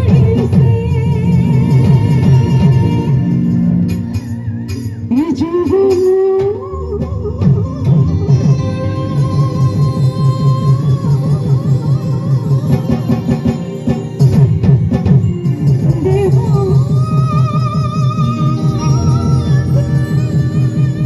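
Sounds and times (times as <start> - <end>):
steady drum beat: 0.0 - 21.0
melodic lead line with pitch bends: 7.9 - 21.0.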